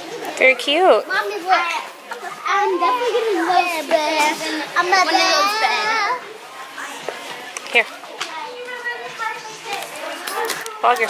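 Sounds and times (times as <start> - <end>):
young children talking: 0.0 - 11.0.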